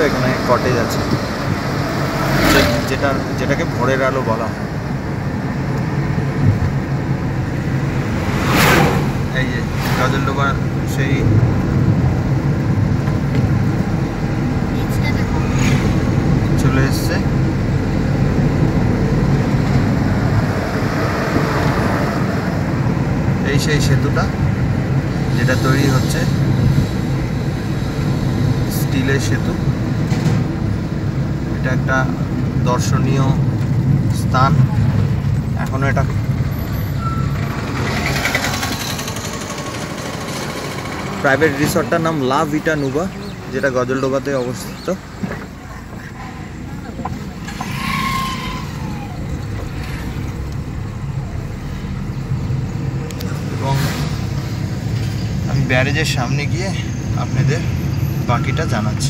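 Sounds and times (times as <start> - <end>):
car engine and road noise: 0.0 - 59.0.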